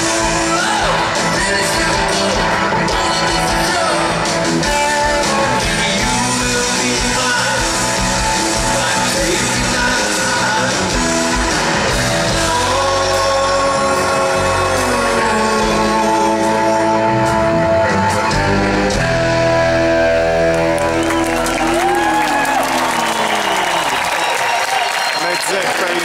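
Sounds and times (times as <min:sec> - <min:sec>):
live rock band playing: 0:00.0 - 0:25.5.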